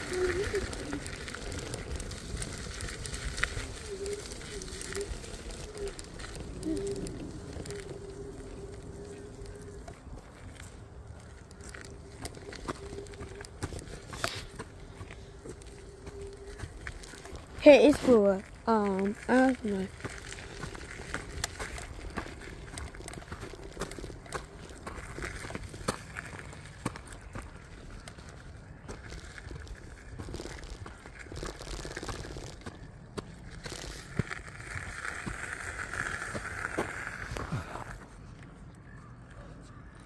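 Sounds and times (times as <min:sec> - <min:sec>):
tyres crunching on gravel: 0:00.0 - 0:40.0.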